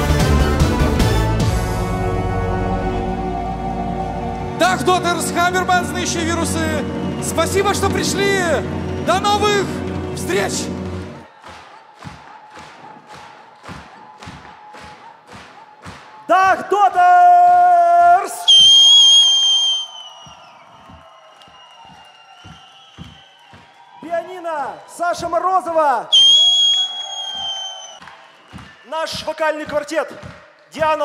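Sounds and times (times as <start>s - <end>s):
steady rhythmic thumps: 4.3s - 16.3s, 20.2s - 23.8s, 27.4s - 31.0s
piercing whistle from audience: 18.4s - 23.8s, 26.1s - 28.9s.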